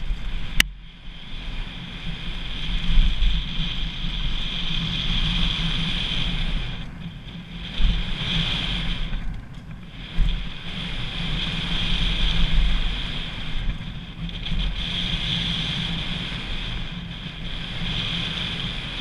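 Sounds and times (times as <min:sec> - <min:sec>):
bike tyres rumbling on gravel: 0:00.0 - 0:19.0
wind rushing over microphone: 0:00.0 - 0:19.0.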